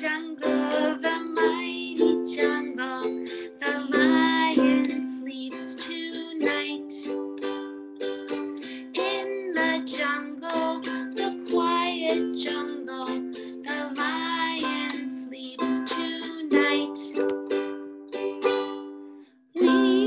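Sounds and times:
woman singing: 0.0 - 7.7, 8.6 - 17.4, 19.6 - 20.0
ukulele strumming: 0.0 - 20.0.

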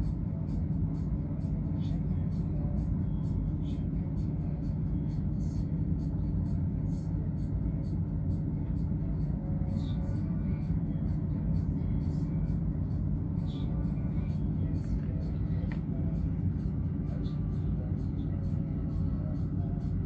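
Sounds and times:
ship engine low rumble: 0.0 - 20.0
faint voices: 9.0 - 20.0.

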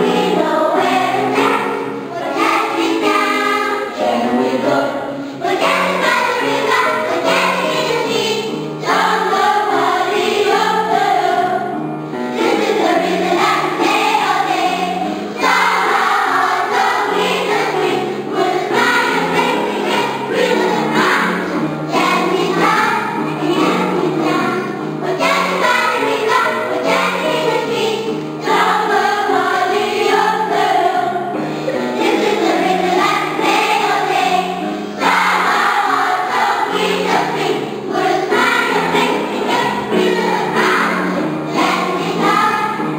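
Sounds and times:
children's choir singing: 0.0 - 42.9.

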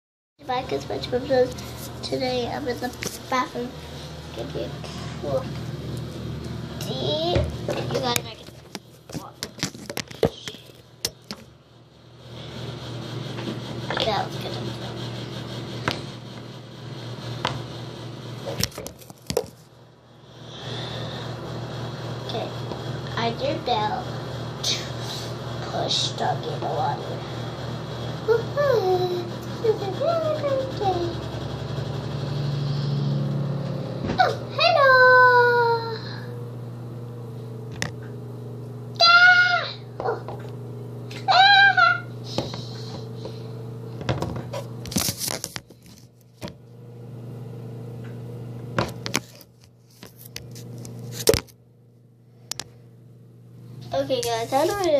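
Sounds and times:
low background hum: 0.4 - 54.9.

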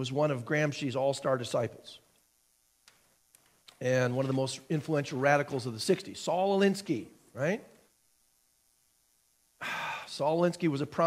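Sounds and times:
man breathing in loudly: 9.6 - 10.1.

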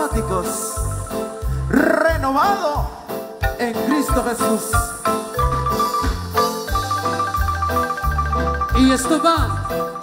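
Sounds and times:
marimba band playing a hymn: 0.0 - 10.0
rolled marimba high note: 3.4 - 10.0
bass line: 4.2 - 10.0.

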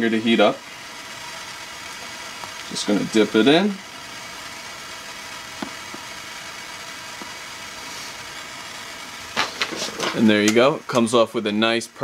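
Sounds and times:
propane torch hissing: 0.0 - 12.0.

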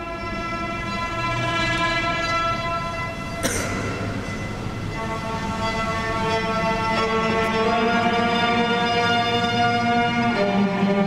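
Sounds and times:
live concert held chord: 2.8 - 8.2
sharp struck attack: 3.4 - 5.0.

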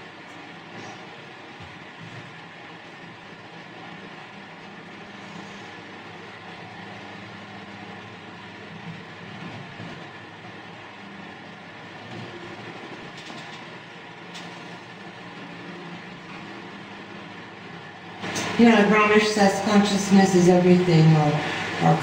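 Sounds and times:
electric fans whirring: 0.0 - 22.0.

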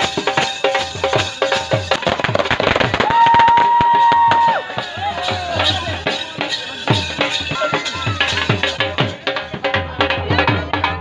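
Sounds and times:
firework crackling: 0.0 - 9.3.

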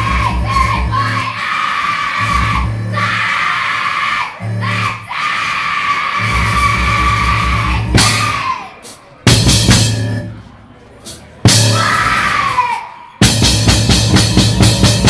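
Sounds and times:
live punk band playing: 6.2 - 10.3, 11.0 - 12.5, 13.2 - 15.0.

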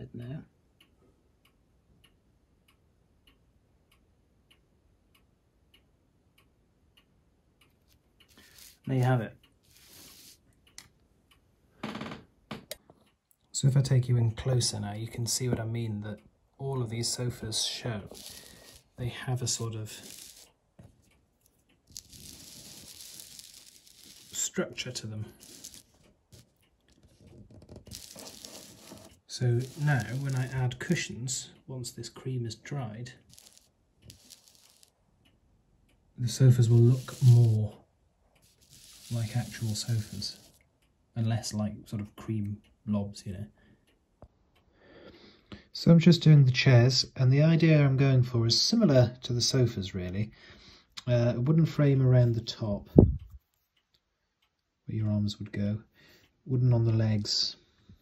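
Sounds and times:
faint ticking: 0.0 - 12.0, 14.4 - 45.7.

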